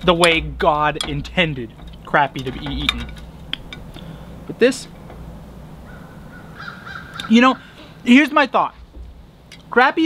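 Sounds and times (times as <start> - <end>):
bird calling faintly: 2.8 - 8.1.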